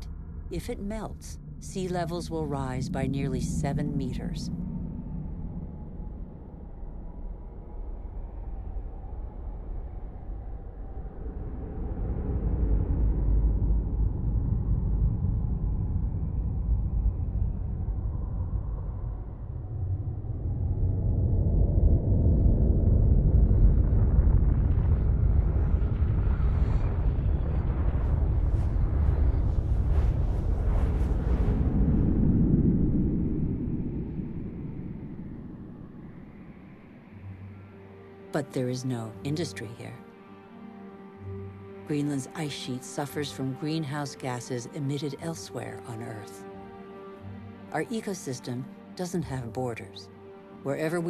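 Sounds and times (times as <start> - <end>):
deep low rumble: 0.0 - 37.7.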